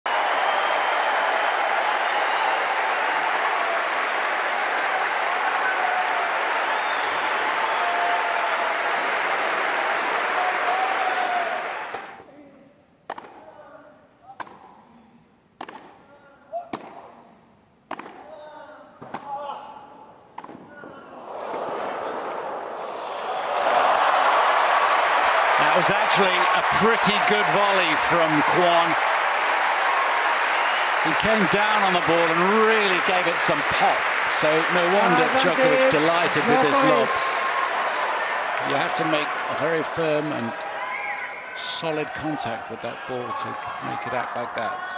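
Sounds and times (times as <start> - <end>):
crowd cheering and applauding: 0.0 - 12.2, 21.2 - 44.2
tennis racket hitting ball: 13.1 - 13.4, 15.6 - 16.0, 16.7 - 17.2, 17.9 - 18.3, 19.0 - 19.4, 20.4 - 20.8.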